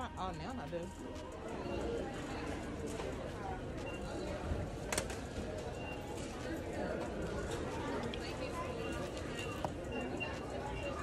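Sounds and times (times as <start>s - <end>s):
chatter of many shoppers: 0.0s - 11.0s.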